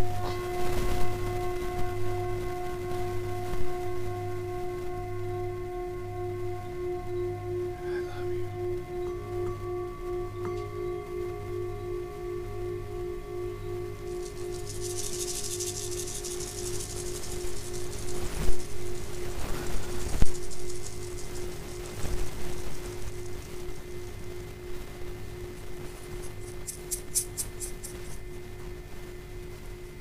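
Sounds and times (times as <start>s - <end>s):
singing bowls ringing: 0.0s - 28.5s
high shimmering rustle: 0.0s - 28.8s.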